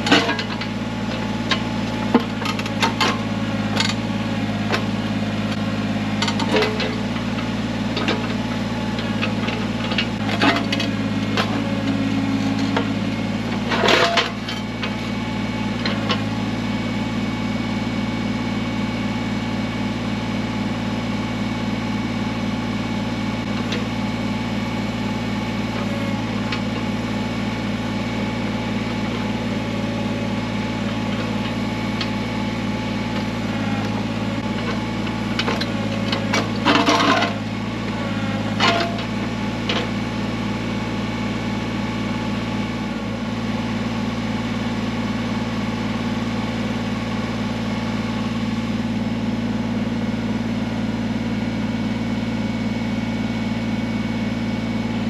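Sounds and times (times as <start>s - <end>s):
diesel tractor engine running: 0.0s - 55.0s.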